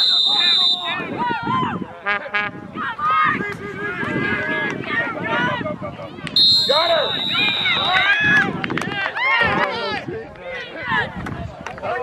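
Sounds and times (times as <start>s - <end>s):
referee's whistle long blast: 0.0s - 1.1s, 6.4s - 8.1s
spectators shouting and cheering: 0.0s - 12.0s.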